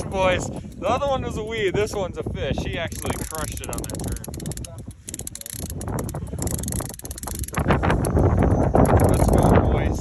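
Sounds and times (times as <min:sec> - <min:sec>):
fishing reel clicking: 0:00.0 - 0:02.0, 0:02.6 - 0:09.6
wind buffeting microphone: 0:00.0 - 0:10.0.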